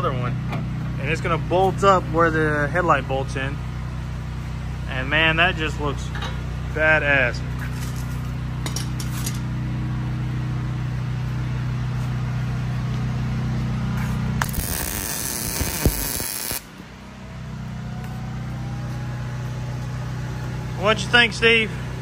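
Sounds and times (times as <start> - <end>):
steady low hum: 0.0 - 22.0
crackling welding arc hiss: 14.4 - 16.7.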